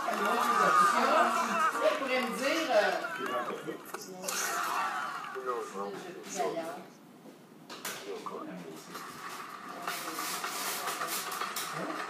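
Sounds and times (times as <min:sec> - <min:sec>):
rushing hiss from television: 0:08.2 - 0:12.0.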